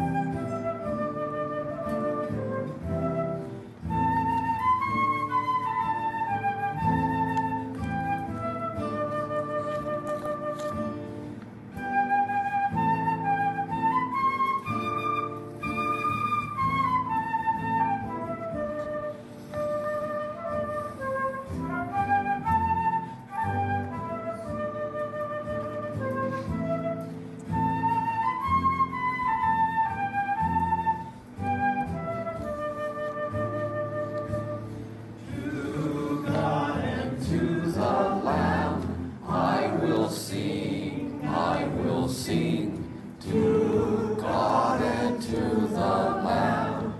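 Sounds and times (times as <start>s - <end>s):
slow instrumental melody: 0.0s - 46.9s.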